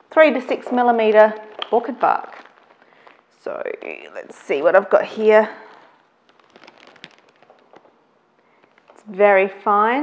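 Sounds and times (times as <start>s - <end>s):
plastic bag crinkling: 0.2s - 9.1s.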